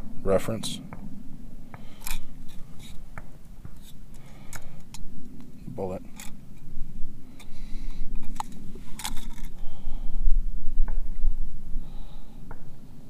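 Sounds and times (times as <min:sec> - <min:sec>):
small clicks and light scrapes: 0:02.0 - 0:05.5, 0:07.4 - 0:09.6.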